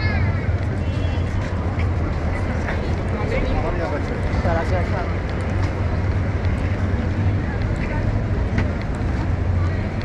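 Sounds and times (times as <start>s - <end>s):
pedestrians chattering: 0.0s - 10.0s
road traffic rumble: 0.0s - 10.0s.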